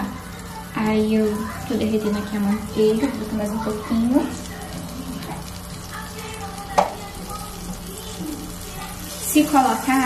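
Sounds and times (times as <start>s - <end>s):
butter sizzling in a frying pan: 0.0s - 10.0s.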